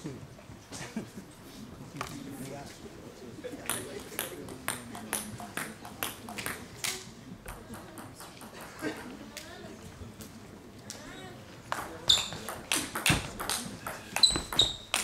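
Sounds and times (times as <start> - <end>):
table tennis ball bouncing: 3.6 - 6.7, 7.4 - 9.1, 11.7 - 15.0.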